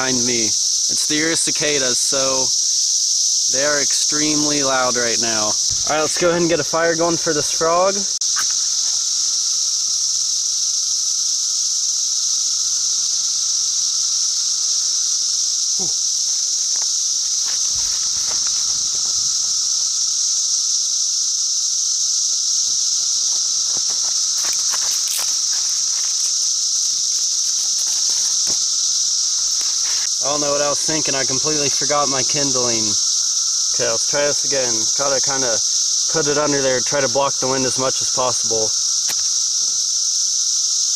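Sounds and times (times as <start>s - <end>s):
cicadas buzzing: 0.0s - 40.9s
crackling of burning paper and sticks: 15.8s - 19.6s, 23.2s - 30.2s.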